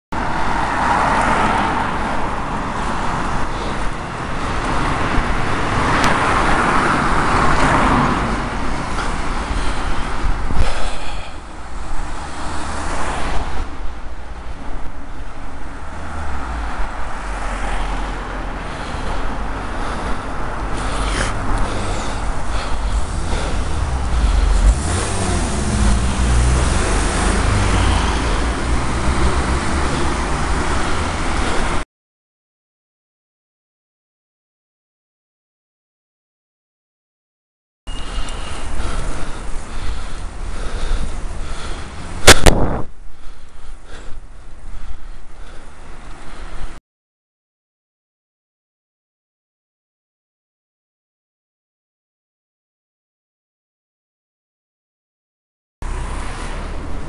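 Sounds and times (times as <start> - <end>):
cars driving by: 0.1 - 31.8, 37.9 - 46.8, 55.8 - 57.0.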